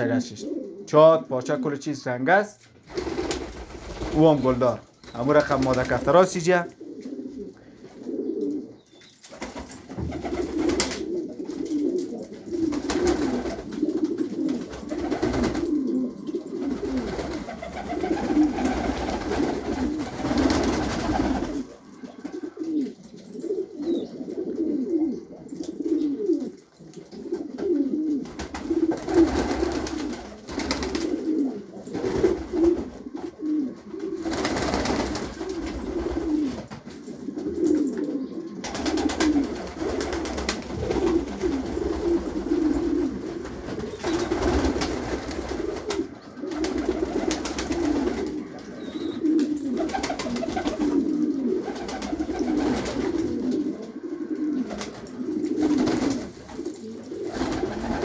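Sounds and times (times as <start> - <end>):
pigeons cooing: 0.0 - 1.2, 2.8 - 58.0.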